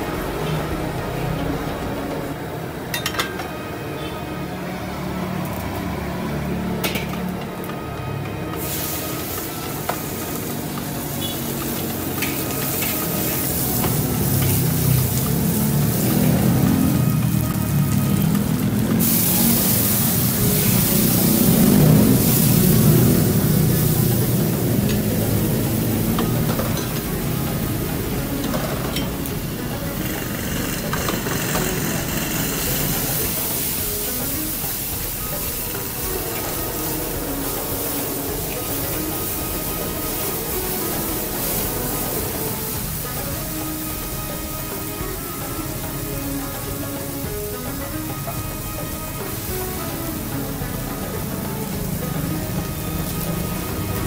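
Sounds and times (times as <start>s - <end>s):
food sizzling in a wok: 0.0s - 54.0s
metal utensils scraping a wok: 8.5s - 17.4s, 18.1s - 54.0s.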